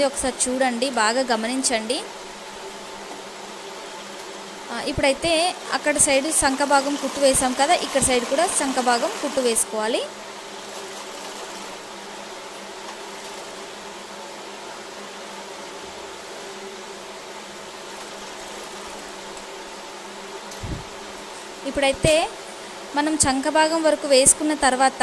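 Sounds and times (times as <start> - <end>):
sewing machine humming: 5.2 - 12.0, 18.0 - 19.3.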